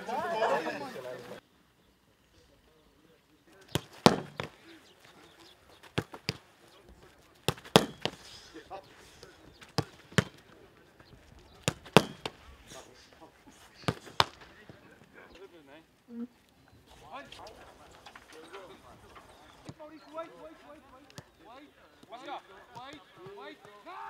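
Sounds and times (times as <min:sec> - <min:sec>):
ball impact thuds: 0:03.6 - 0:04.7, 0:05.4 - 0:06.5, 0:07.4 - 0:08.4, 0:09.2 - 0:10.6, 0:11.3 - 0:12.5, 0:13.7 - 0:14.9
football kicks: 0:03.6 - 0:08.3, 0:09.2 - 0:12.5, 0:13.7 - 0:14.9.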